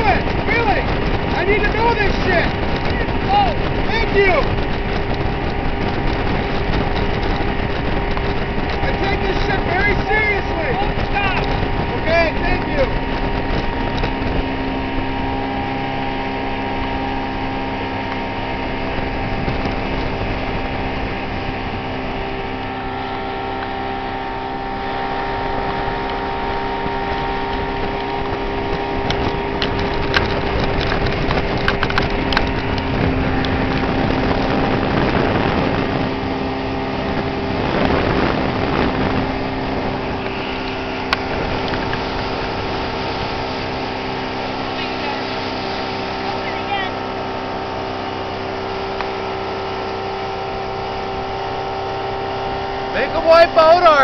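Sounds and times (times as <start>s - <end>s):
outboard motor running: 0.0s - 54.0s
rush of boat wake: 0.0s - 54.0s
wind on microphone: 0.0s - 54.0s.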